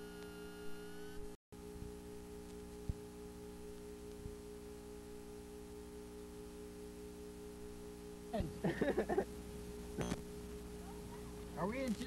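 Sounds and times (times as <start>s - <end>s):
tape hiss: 0.0s - 12.0s
tape playback hum: 0.0s - 12.0s.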